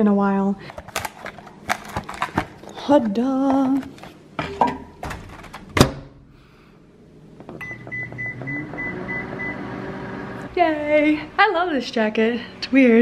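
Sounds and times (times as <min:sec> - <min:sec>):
microwave oven humming: 0:07.0 - 0:13.0.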